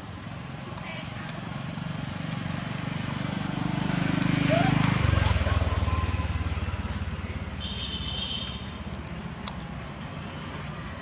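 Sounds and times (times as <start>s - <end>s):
vehicle engine approaching: 0.3s - 7.8s.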